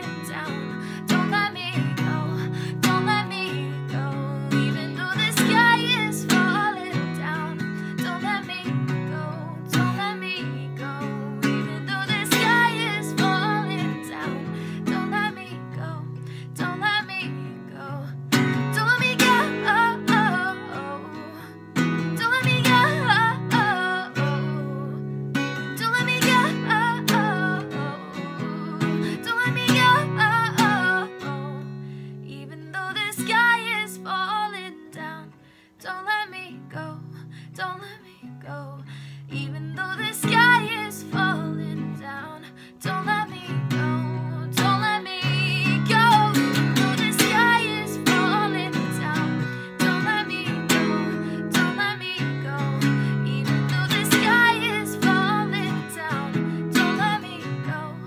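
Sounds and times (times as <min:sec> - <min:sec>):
acoustic guitar strummed in chords: 0:00.0 - 0:58.0
woman singing: 0:00.0 - 0:58.0.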